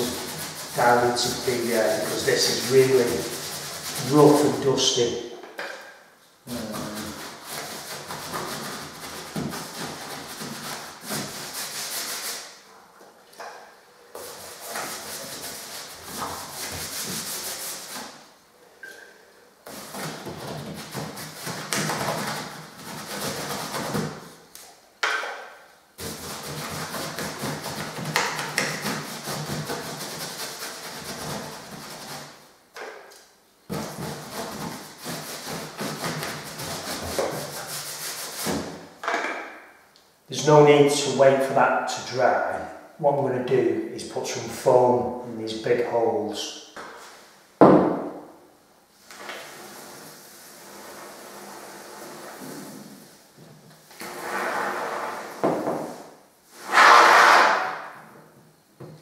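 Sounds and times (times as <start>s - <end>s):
paintbrush scrubbing on plaster: 0.0s - 5.1s, 6.5s - 12.7s, 14.2s - 18.3s, 19.7s - 24.4s, 26.0s - 32.4s, 33.7s - 38.8s, 49.4s - 53.4s, 54.0s - 57.8s.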